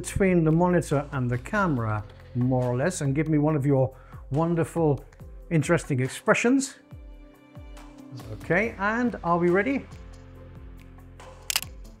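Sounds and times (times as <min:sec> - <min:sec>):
background music: 0:00.0 - 0:12.0
camera shutter click: 0:11.4 - 0:11.9.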